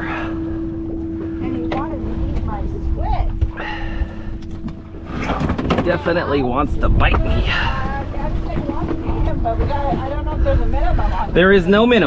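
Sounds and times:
low wind rumble: 0.0s - 12.0s
steady hum: 0.0s - 12.0s.

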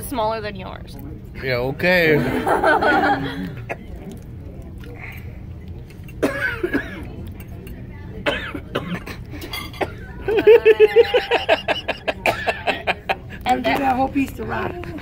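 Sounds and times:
people laughing: 2.1s - 3.9s, 10.1s - 13.6s
people talking: 6.3s - 15.0s.

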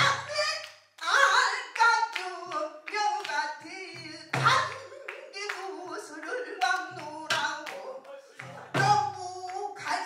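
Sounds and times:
woman singing: 0.0s - 10.0s.

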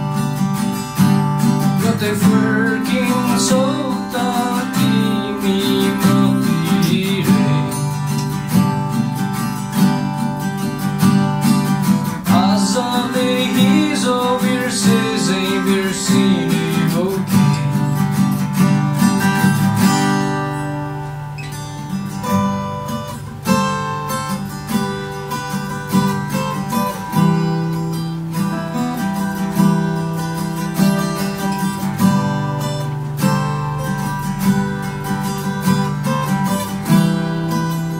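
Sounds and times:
strummed acoustic guitars: 0.0s - 37.9s
man singing: 1.6s - 8.2s, 12.2s - 18.2s.

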